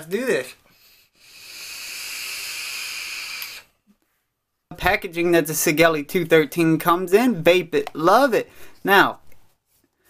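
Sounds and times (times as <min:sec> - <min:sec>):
hiss of air through vape: 0:00.8 - 0:03.8.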